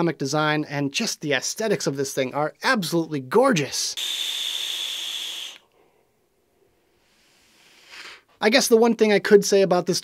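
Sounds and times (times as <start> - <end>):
air hissing through vape: 4.0 - 5.7, 7.0 - 8.3
faint exhale: 6.9 - 8.4.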